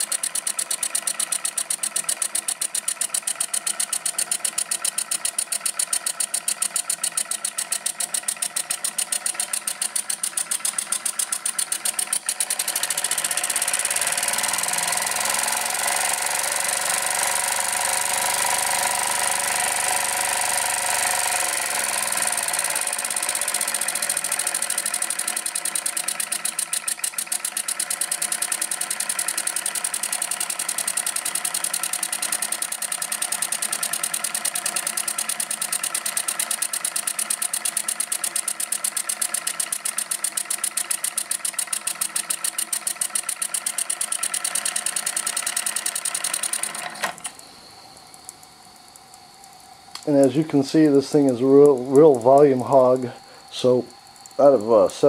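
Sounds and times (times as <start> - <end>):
steam engine exhaust chuffs: 0.0 - 55.0.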